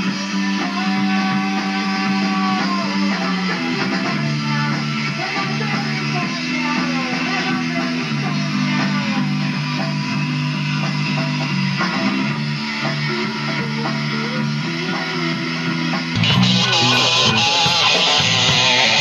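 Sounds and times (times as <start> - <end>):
bass guitar: 0.0 - 19.0
electric guitar rock chords: 0.0 - 19.0.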